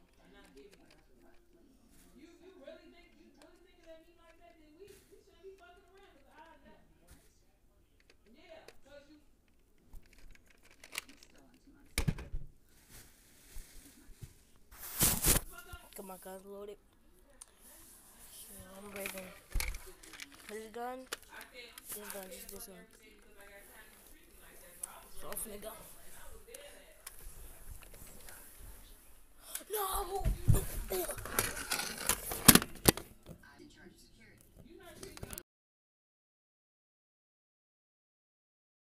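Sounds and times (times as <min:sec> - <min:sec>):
plastic toy gun clicks: 0:10.0 - 0:11.4
plastic toy gun clack: 0:10.0 - 0:12.3, 0:18.9 - 0:22.6, 0:31.0 - 0:33.1
bedding rustling: 0:12.5 - 0:16.4, 0:17.6 - 0:32.9
child's wordless vocal noises: 0:29.4 - 0:31.4.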